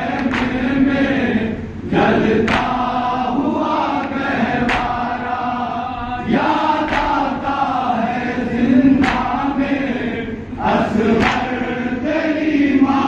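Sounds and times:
men chanting in unison: 0:00.0 - 0:13.0
chest-beating slaps: 0:02.4 - 0:02.8, 0:04.6 - 0:05.1, 0:06.9 - 0:07.2, 0:09.0 - 0:09.4, 0:11.2 - 0:11.6.

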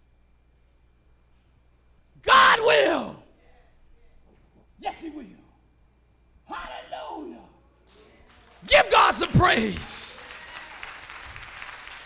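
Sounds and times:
congregation applauding: 0:08.2 - 0:12.0.

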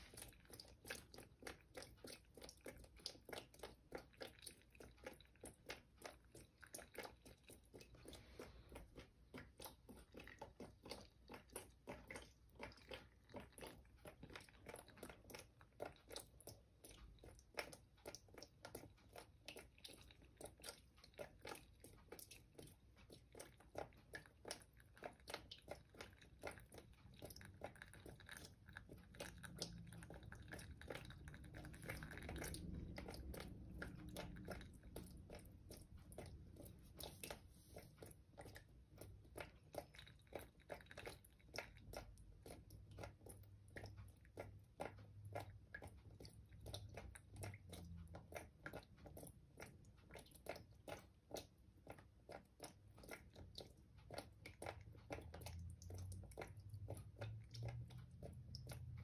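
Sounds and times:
water dripping onto wet sand: 0:14.0 - 0:37.3, 0:38.9 - 0:59.0.

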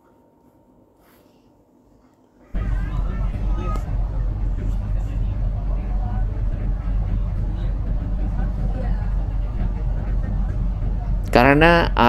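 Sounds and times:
faint voices: 0:02.4 - 0:12.0
low engine hum: 0:02.6 - 0:12.0.

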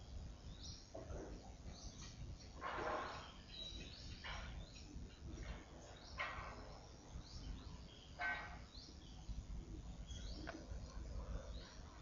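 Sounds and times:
faint birds calling: 0:00.0 - 0:12.0.

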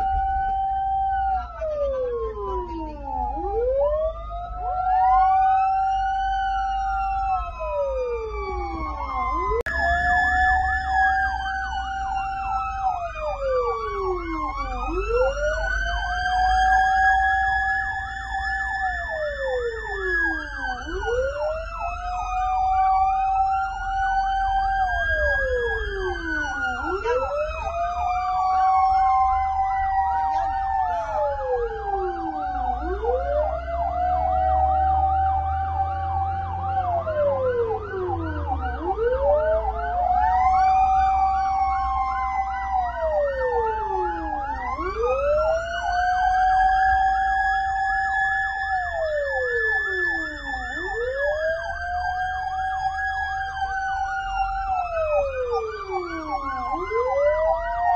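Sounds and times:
engine and road rumble: 0:00.0 - 0:57.9
fast yelping siren warble: 0:00.0 - 0:57.9
high sweeping siren: 0:00.0 - 0:57.9
siren rising and falling: 0:00.0 - 0:57.9.

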